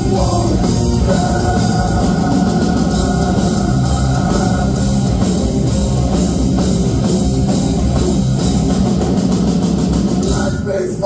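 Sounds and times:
bass guitar: 0:00.0 - 0:11.0
distorted electric guitars: 0:00.0 - 0:11.0
drum kit: 0:00.0 - 0:11.0.

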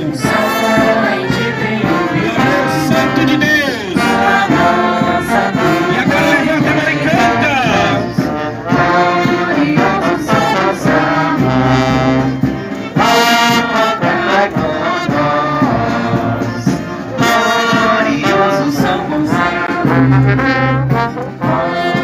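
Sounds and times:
marching brass band playing: 0:00.0 - 0:22.0.

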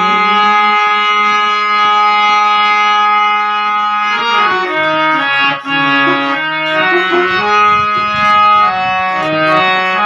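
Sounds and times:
harmonium held reed note: 0:00.0 - 0:10.0.

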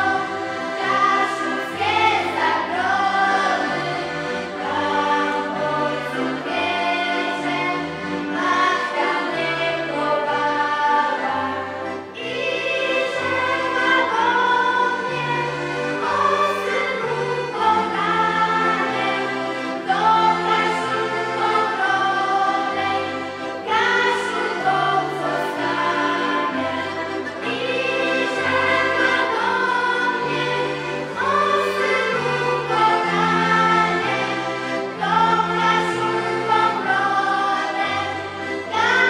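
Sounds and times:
accordions: 0:00.0 - 0:39.0
children's choir singing: 0:00.0 - 0:39.0.

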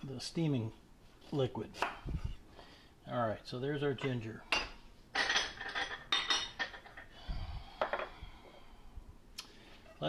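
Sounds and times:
dishes and utensils clinking: 0:04.0 - 0:07.1.

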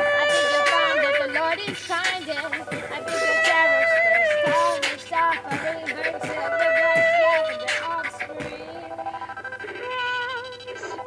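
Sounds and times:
person singing: 0:00.0 - 0:11.0
kick drum beats: 0:05.5 - 0:07.4.

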